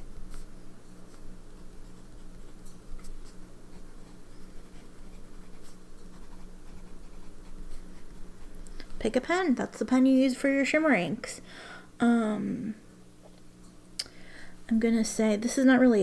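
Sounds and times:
low hum: 0.0 - 10.3
pen nib scratching paper: 1.1 - 8.6.

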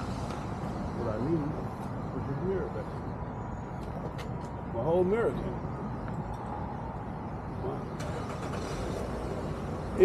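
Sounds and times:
low vehicle rumble with road noise: 0.0 - 10.0.

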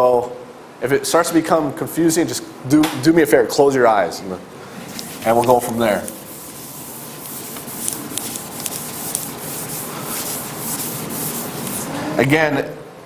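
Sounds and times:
eraser rubbing on chalkboard: 5.0 - 12.0.

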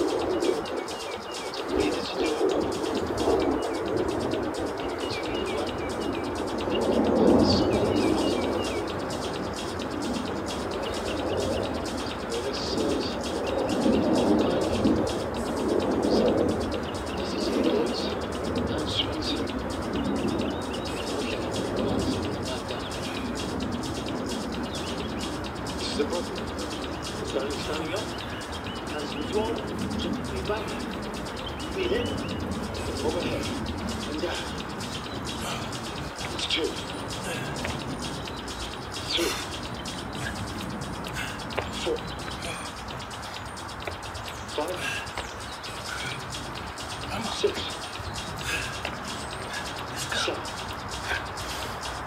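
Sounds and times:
low background noise: 0.0 - 52.0
small birds chirping: 0.0 - 52.0.

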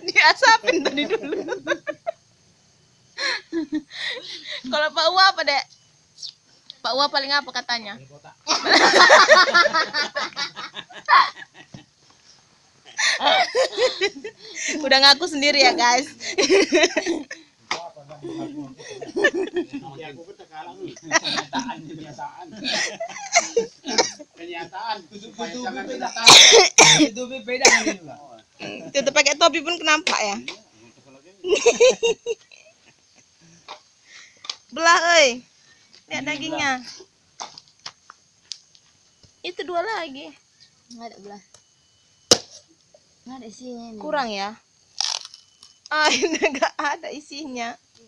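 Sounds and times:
people talking: 0.0 - 2.1, 4.2 - 5.6, 13.0 - 32.3, 36.1 - 37.0, 39.4 - 41.4, 45.9 - 47.8
people laughing: 0.0 - 2.2, 8.5 - 11.9, 13.0 - 14.9, 16.1 - 17.4, 18.1 - 27.1, 31.4 - 32.8, 46.1 - 46.8
machete chopping coconut: 42.3 - 42.6.

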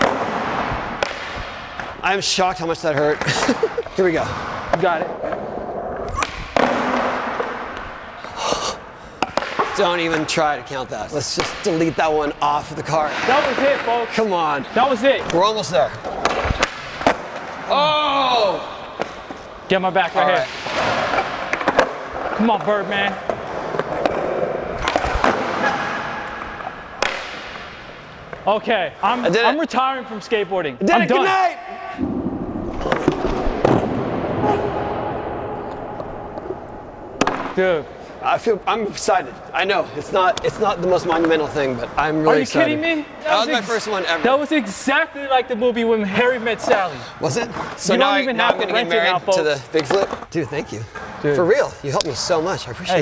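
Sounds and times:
sharp skateboard clack: 23.3 - 27.8
skateboard pop and clacks: 27.0 - 27.6.

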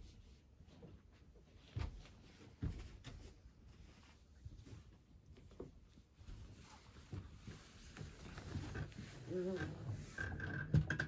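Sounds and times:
soft knocks and shuffling: 0.0 - 10.2.

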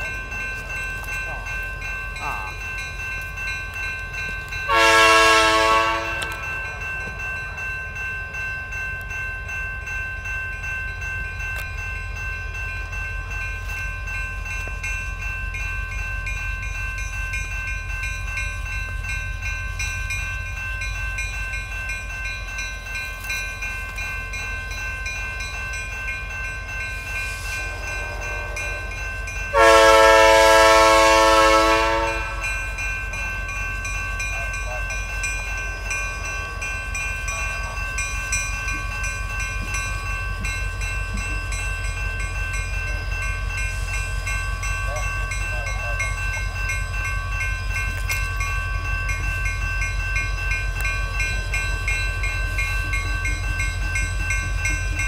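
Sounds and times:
low rumble of train: 0.0 - 55.0
locomotive air horn blasts: 4.7 - 6.4, 29.5 - 32.4.

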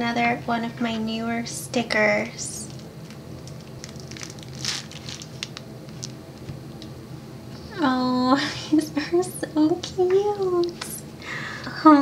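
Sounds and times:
plastic wrapping crinkling: 2.6 - 6.5.

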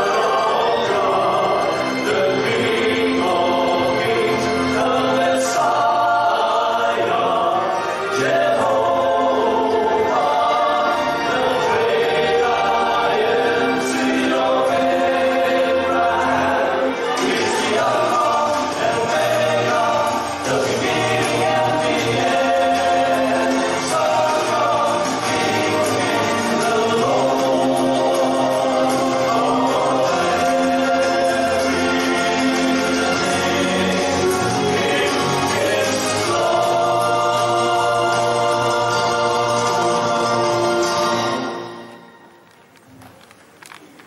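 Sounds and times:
male choir singing gospel: 0.0 - 42.0.

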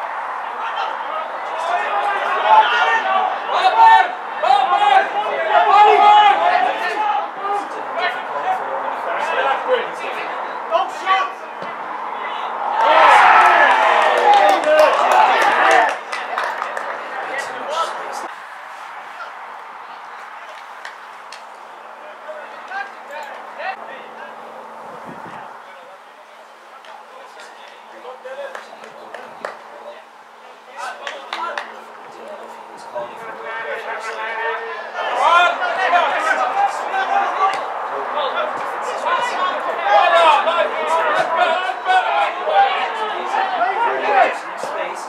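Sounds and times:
footballers shouting: 0.0 - 24.4, 25.3 - 45.0.

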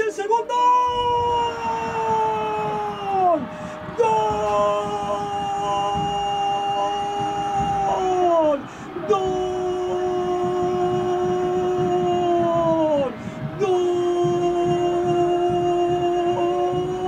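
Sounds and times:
commentator breath: 3.4 - 4.0, 8.6 - 9.0, 13.1 - 13.6.

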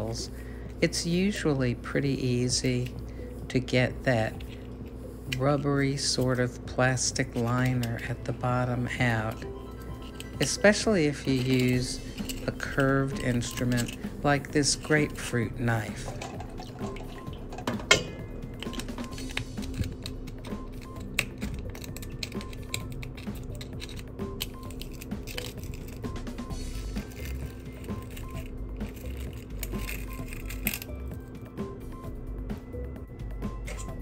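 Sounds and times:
quiet background music: 0.0 - 34.0
knife scraping and clicking in metal capsule: 7.2 - 15.2, 16.0 - 26.1, 27.0 - 31.1, 33.6 - 34.0.

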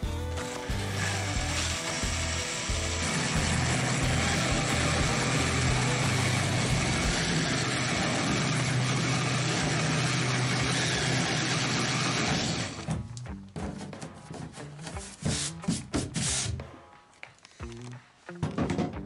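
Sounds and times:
background music: 0.0 - 19.0
cordless drill hole saw cutting plastic: 0.3 - 12.9.

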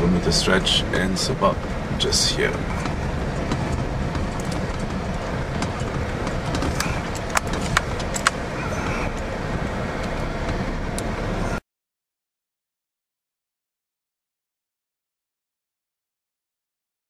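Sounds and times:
vehicle rumbling over gravel road: 0.0 - 11.6.

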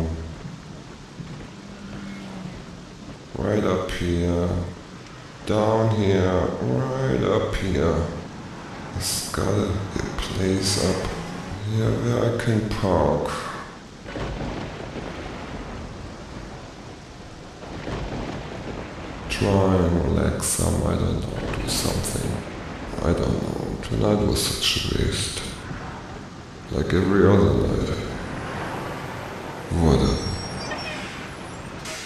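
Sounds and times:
rain falling on a car: 0.0 - 32.0.

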